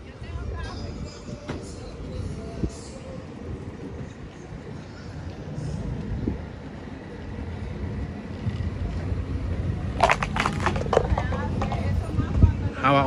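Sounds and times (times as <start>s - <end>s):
city traffic rumble: 0.0s - 13.0s
wind on microphone: 0.0s - 13.0s
plastic cup skittering on pavement: 9.9s - 11.8s.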